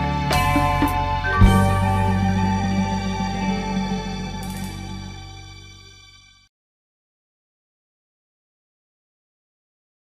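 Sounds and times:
chord with low bass note: 0:00.0 - 0:06.4
sustained background chords: 0:00.0 - 0:06.5.

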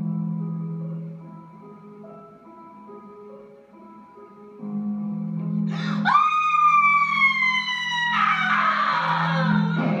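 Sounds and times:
woman screaming: 0:05.7 - 0:09.8.

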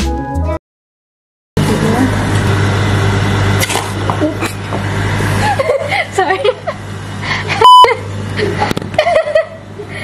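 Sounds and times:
slush drink machine humming: 0:01.6 - 0:10.0.

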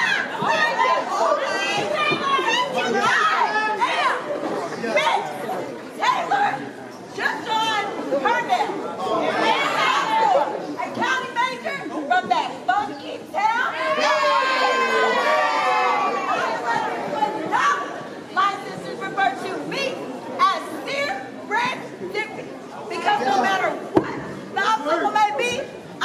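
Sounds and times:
women shouting and chanting: 0:00.0 - 0:25.7
crowd chatter: 0:00.0 - 0:26.0.

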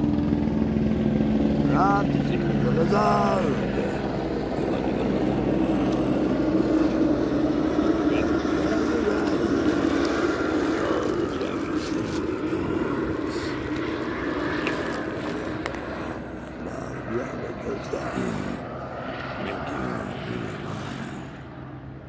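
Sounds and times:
engine drone passing by: 0:00.0 - 0:22.0.

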